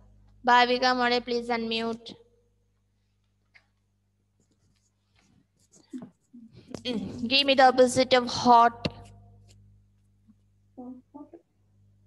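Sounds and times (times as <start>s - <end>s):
faint scratching and rustling: 4.4s - 7.5s.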